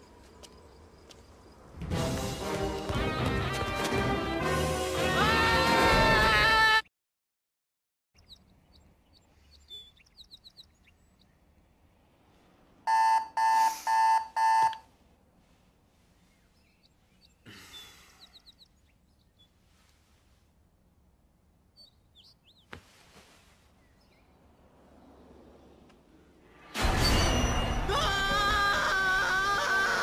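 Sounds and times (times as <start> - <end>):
faint bird chirps: 8.2 - 11.5, 16.0 - 20.2
alarm clock beeping: 12.9 - 14.8
soft rustle: 14.9 - 17.4, 19.3 - 21.0, 22.5 - 24.2.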